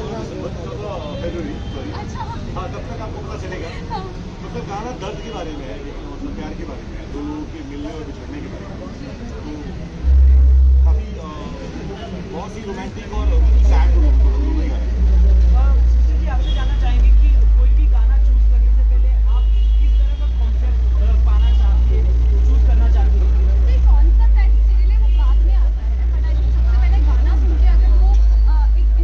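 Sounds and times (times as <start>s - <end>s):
voices chattering: 0.0s - 29.0s
deep rumble: 10.0s - 11.5s.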